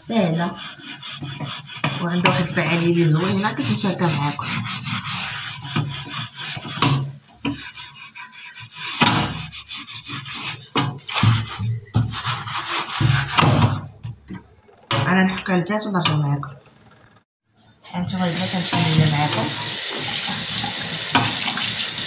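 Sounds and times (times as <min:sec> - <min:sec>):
cloth scrubbing metal tray: 0:00.0 - 0:13.9.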